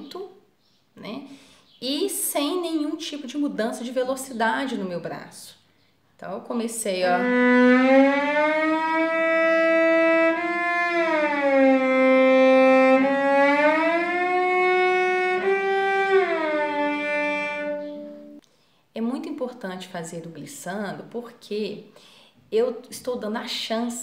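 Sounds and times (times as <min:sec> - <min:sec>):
bowed cello glissando: 0:06.9 - 0:18.4.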